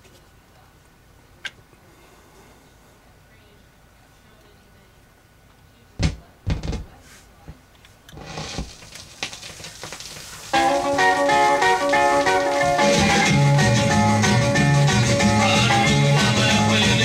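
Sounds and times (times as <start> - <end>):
vinyl surface hiss and crackle: 0.0 - 1.6, 3.3 - 5.9, 6.9 - 17.0
stylus thumps on record: 6.0 - 15.7
rockabilly song with guitar: 8.7 - 17.0.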